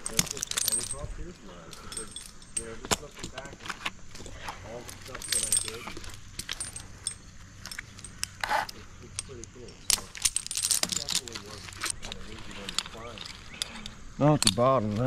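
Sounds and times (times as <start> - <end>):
metal hardware clinking: 0.0 - 15.0.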